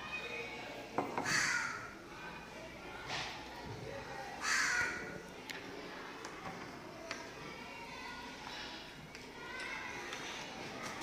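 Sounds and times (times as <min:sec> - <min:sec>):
crow cawing: 0:01.2 - 0:01.9, 0:04.4 - 0:05.1.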